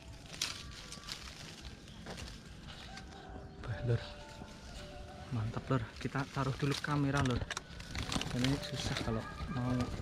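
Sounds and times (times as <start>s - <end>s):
buds crackling as picked: 0.0s - 10.0s
leaves rustling: 0.0s - 10.0s.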